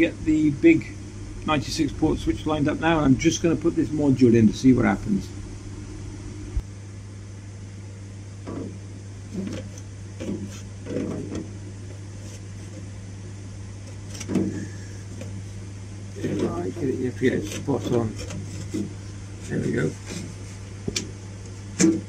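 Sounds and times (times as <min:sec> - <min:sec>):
network equipment and fans humming: 0:00.0 - 0:22.0.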